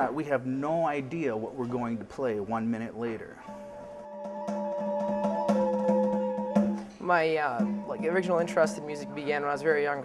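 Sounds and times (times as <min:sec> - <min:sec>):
hand drum strokes: 0:03.4 - 0:09.2
recorder melody: 0:03.4 - 0:10.0.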